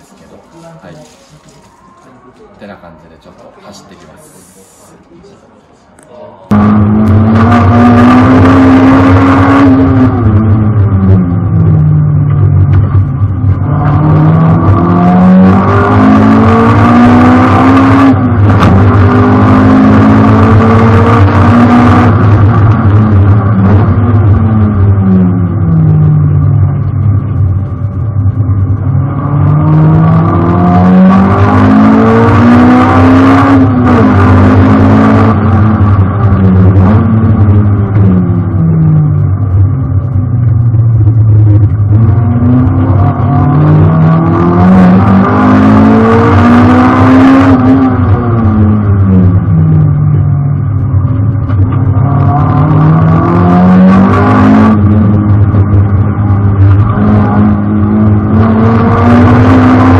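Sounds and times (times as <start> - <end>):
car engine revving in cabin: 6.5 - 59.9.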